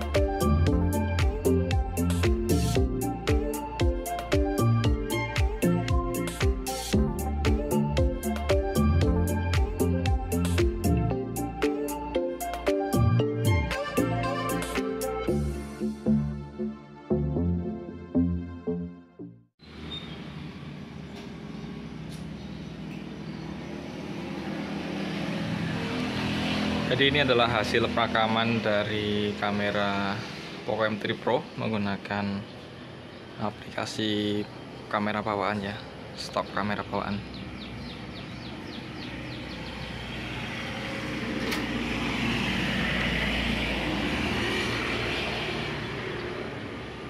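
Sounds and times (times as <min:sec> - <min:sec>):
vehicle engine approaching: 0:19.6 - 0:33.4, 0:35.8 - 0:47.0.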